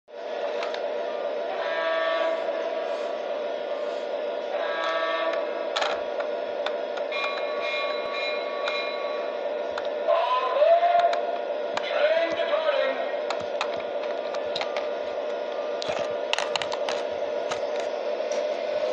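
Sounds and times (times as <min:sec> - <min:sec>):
toy diesel engine drone: 0:00.5 - 0:09.4
long electronic tone: 0:01.1 - 0:03.1, 0:04.4 - 0:05.6, 0:07.1 - 0:10.6
toy train horn blasts: 0:01.5 - 0:02.7, 0:04.5 - 0:05.5, 0:07.1 - 0:09.3.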